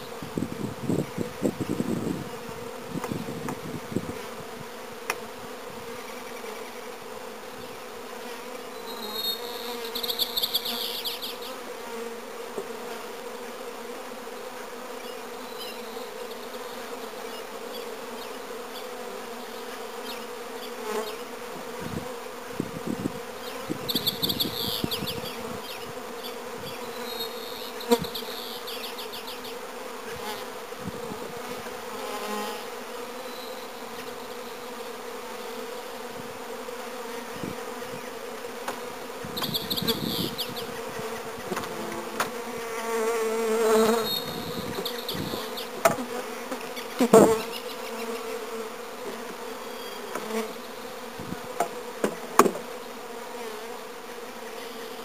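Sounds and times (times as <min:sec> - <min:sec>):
honeybees buzzing: 0:00.0 - 0:55.0.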